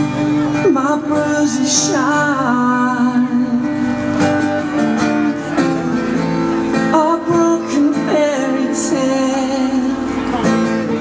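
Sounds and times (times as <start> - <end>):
acoustic guitar strumming: 0.0 - 11.0
person singing: 0.6 - 3.8, 6.9 - 10.1.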